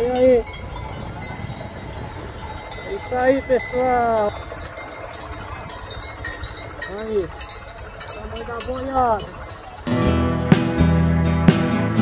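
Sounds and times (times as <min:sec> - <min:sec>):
wind rumble on microphone: 0:00.0 - 0:09.9
cattle bells clinking: 0:00.0 - 0:10.3.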